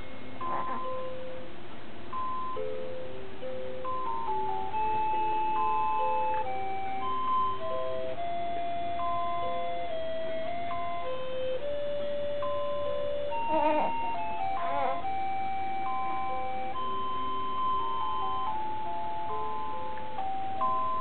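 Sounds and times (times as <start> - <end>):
chime-like lullaby melody: 0.0 - 21.0.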